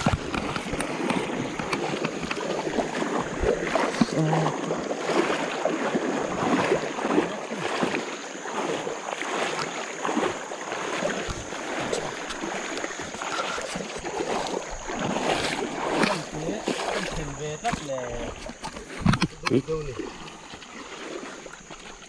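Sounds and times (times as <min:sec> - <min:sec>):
river water splashing: 0:00.0 - 0:22.0
wading footsteps splashing: 0:00.0 - 0:22.0.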